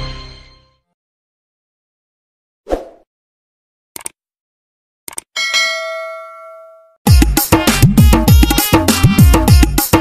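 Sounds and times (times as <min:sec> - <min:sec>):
quick clicks: 0:04.0 - 0:04.2, 0:05.1 - 0:05.3
bright bell ding: 0:05.4 - 0:07.0.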